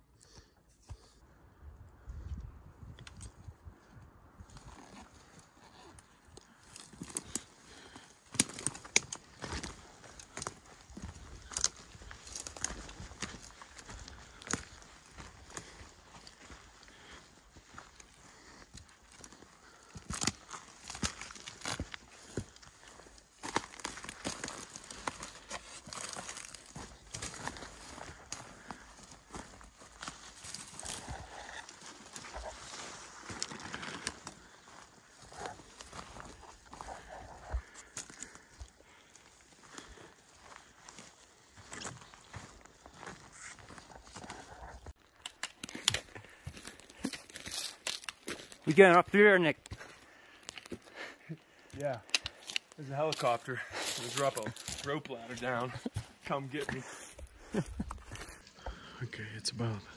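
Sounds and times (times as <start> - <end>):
footsteps on dry ground: 4.4 - 58.8
twigs snapping underfoot: 6.4 - 17.2, 18.8 - 37.0, 44.9 - 48.7, 49.6 - 54.9.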